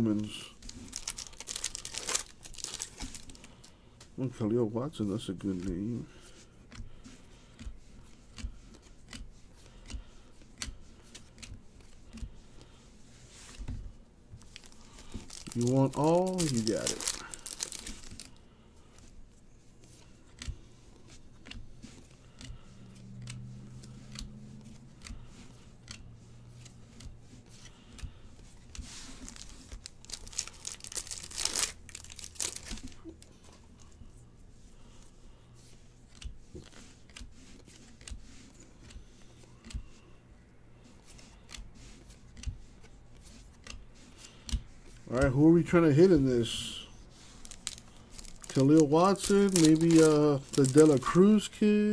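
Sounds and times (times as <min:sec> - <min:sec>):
foil wrapper tearing and crinkling: 0:00.6 - 0:03.4, 0:14.4 - 0:18.4, 0:29.2 - 0:33.2, 0:47.3 - 0:51.5
cards clicking and tapping: 0:14.4 - 0:18.3, 0:19.9 - 0:33.4, 0:47.3 - 0:51.2.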